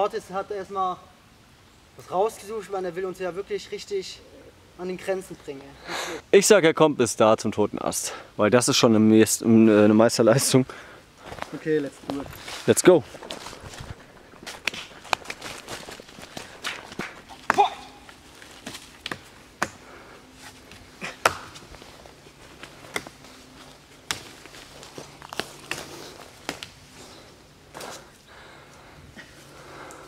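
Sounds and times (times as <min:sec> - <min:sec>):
hands and feet tapping on tree trunk: 0:13.1 - 0:27.0.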